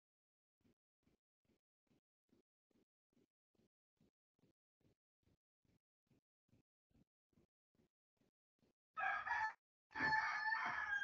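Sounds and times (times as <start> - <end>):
rooster crowing: 9.0 - 11.0.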